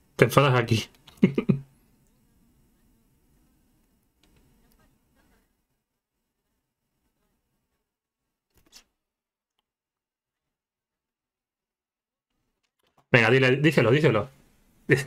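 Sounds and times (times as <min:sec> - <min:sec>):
faint low hum: 0:00.0 - 0:08.8
man speaking: 0:00.2 - 0:01.6, 0:13.2 - 0:15.0.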